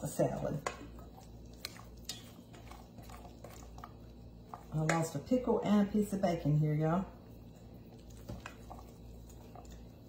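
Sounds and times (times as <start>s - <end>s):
spatula stirring wet salad: 0.0s - 10.0s.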